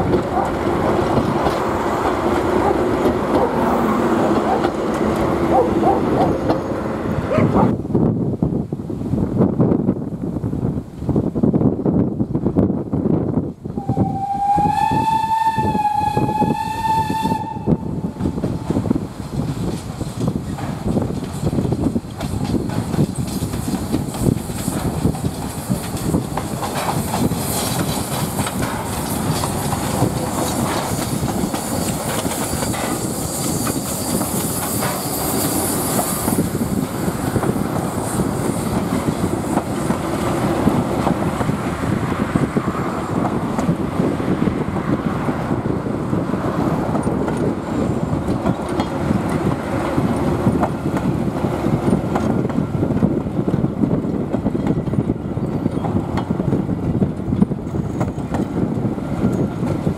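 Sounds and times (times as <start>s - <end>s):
steam locomotive exhaust beating: 13.6s - 59.9s
steam whistle blast: 13.8s - 18.0s
wheel clatter on rails: 18.2s - 44.4s, 46.9s - 59.9s.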